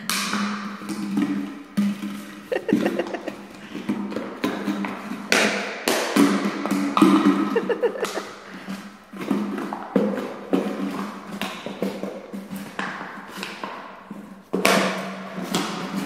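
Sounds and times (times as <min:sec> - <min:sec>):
plastic bottle clattering on concrete: 0:00.0 - 0:16.0.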